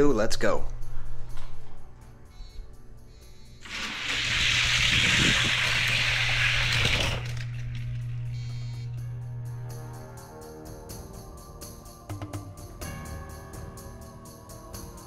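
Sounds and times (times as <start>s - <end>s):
background music: 0.0s - 4.7s, 8.1s - 15.0s
toy cars rolling down plastic track: 3.6s - 7.9s.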